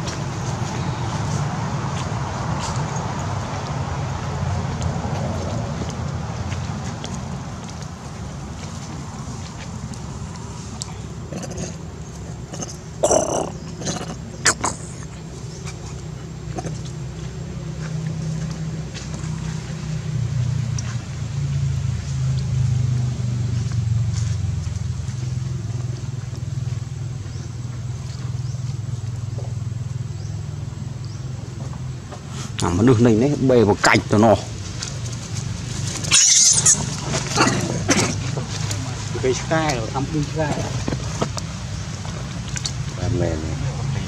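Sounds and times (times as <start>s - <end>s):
low engine hum: 0.0s - 44.0s
monkey screaming: 12.6s - 15.1s, 36.0s - 38.2s.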